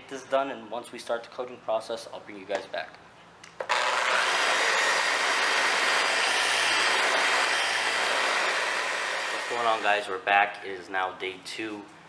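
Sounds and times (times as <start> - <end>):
polisher running: 3.7 - 9.8.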